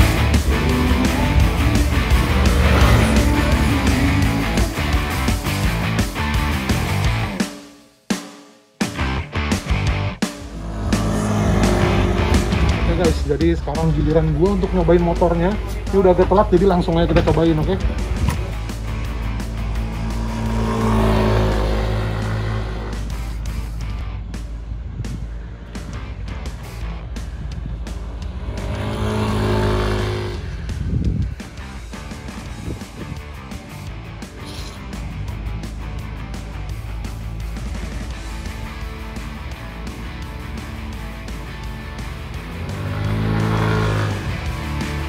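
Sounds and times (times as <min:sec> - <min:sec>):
background music: 0:00.0 - 0:07.7, 0:08.8 - 0:45.0
scooter engine passing by: 0:00.4 - 0:04.6, 0:10.4 - 0:13.2, 0:19.4 - 0:23.2, 0:28.1 - 0:30.8.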